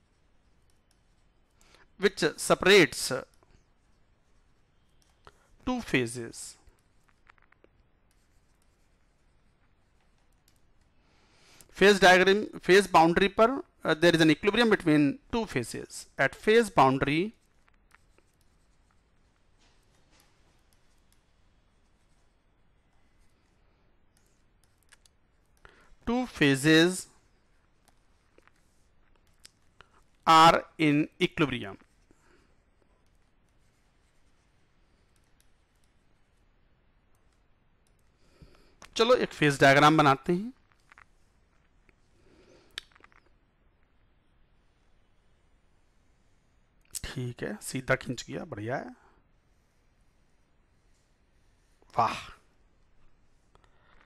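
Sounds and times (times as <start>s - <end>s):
faint room hiss: 0.0s - 54.0s
stylus tapping and scratching on tablet: 0.0s - 54.0s
soft clicks: 6.6s - 11.8s, 17.4s - 26.0s, 31.8s - 39.0s.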